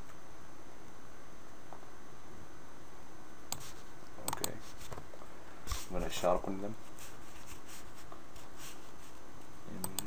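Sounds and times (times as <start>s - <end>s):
microphone room noise hiss: 0.0s - 10.0s
soft scratchy brushing: 5.7s - 9.3s.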